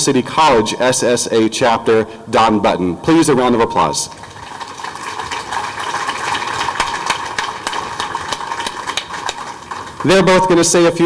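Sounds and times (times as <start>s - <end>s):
audience applauding: 4.1s - 11.0s.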